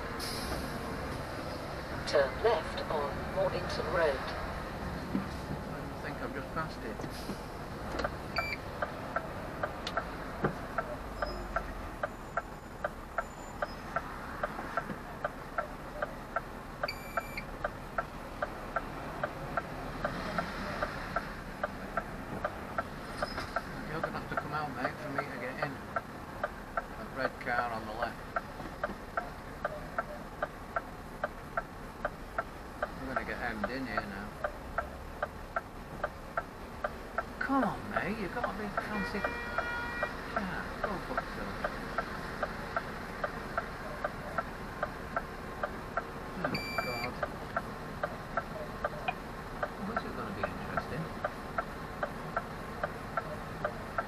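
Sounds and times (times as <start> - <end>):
indicator relay ticking: 8.0 - 10.1, 10.7 - 20.9, 24.0 - 54.0.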